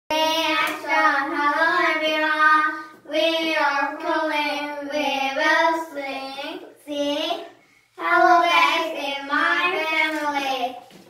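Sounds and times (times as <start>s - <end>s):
girls singing in unison: 8.0s - 9.8s.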